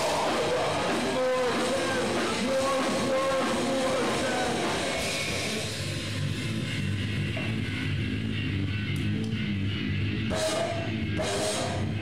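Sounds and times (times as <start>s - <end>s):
distorted electric guitars: 0.0s - 12.0s
hardcore band playing loud: 0.0s - 12.0s.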